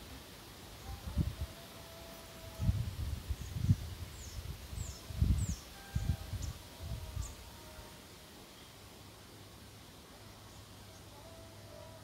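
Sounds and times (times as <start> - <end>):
wind buffeting microphone: 2.6 - 7.4.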